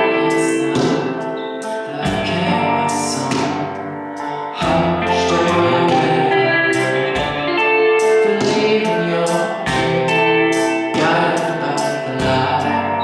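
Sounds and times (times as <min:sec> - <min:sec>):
grand piano chords: 0:00.0 - 0:13.0
man singing: 0:00.0 - 0:13.0.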